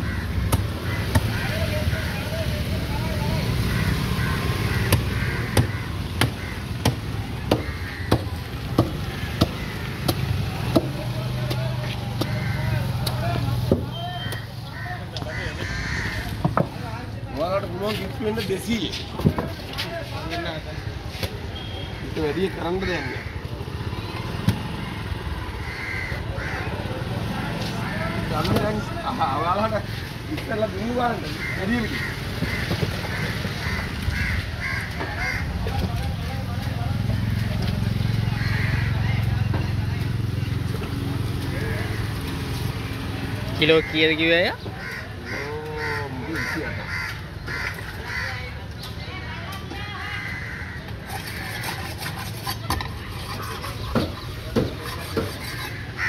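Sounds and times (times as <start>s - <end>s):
crows cawing: 0.0s - 2.4s, 3.5s - 10.9s, 11.8s - 13.1s, 14.3s - 16.8s, 22.0s - 23.8s, 25.4s - 26.9s, 30.9s - 35.8s, 38.3s - 39.4s, 43.6s - 48.6s, 50.0s - 52.1s, 54.6s - 56.0s.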